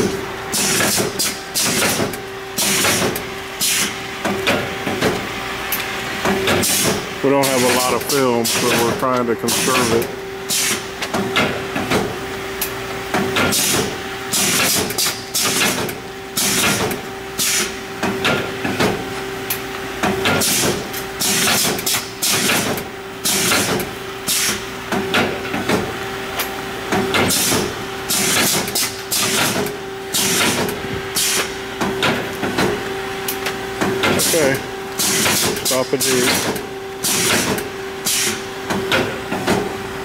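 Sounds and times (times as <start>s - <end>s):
packaging machine hiss: 0.0s - 5.2s, 6.3s - 12.2s, 13.2s - 19.2s, 20.1s - 26.0s, 27.0s - 32.9s, 33.9s - 39.8s
machine hum: 0.0s - 40.0s.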